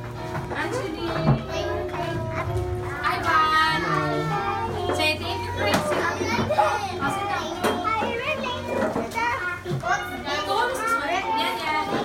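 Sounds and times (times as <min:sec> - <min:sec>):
young children talking: 0:00.8 - 0:12.0.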